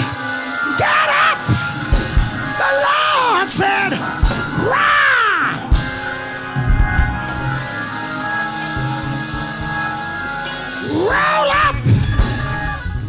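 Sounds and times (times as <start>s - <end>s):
church music held chords: 0.0s - 13.0s
preacher shouting wordlessly: 0.6s - 1.6s, 2.5s - 5.8s, 10.8s - 11.9s
low drum hits: 1.9s - 2.6s, 6.6s - 7.6s.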